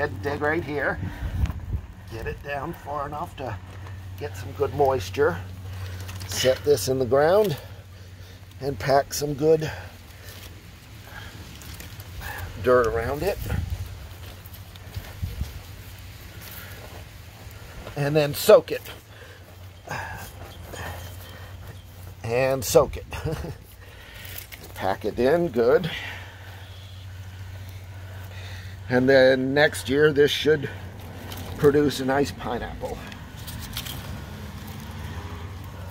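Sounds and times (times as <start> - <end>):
steady low rumble: 0.0 - 34.7
hands patting soil: 0.0 - 35.9.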